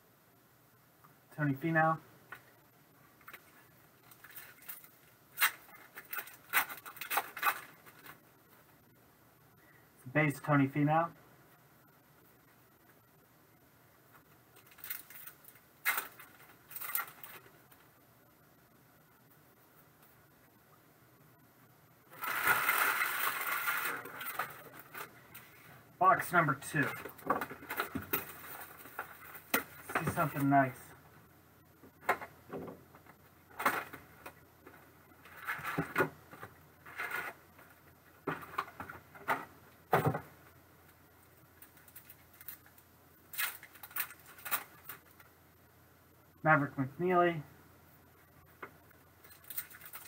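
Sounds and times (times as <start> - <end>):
plastic wrapper crinkling and tearing: 4.1 - 8.2, 14.6 - 17.5, 22.1 - 25.1, 41.6 - 45.3, 49.2 - 50.0.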